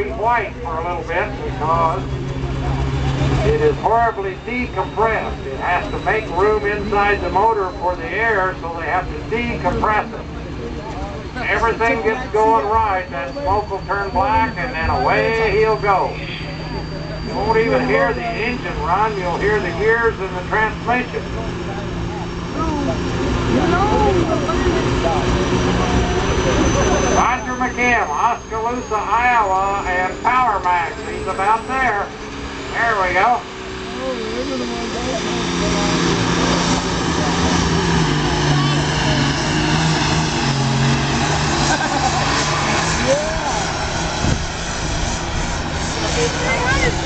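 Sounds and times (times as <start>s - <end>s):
crowd voices: 0.0s - 47.0s
diesel engine drone: 0.0s - 47.0s.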